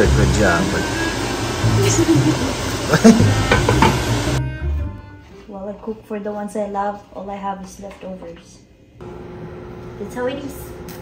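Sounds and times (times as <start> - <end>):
noisy kitchen: 0.0 - 11.0
faint background music: 4.4 - 9.0
woman's voice: 5.4 - 8.7, 10.0 - 10.8.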